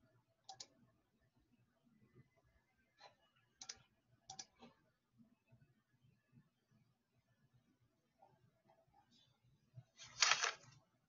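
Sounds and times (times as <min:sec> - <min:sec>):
computer mouse clicks: 0:00.5 - 0:00.8, 0:03.1 - 0:04.8.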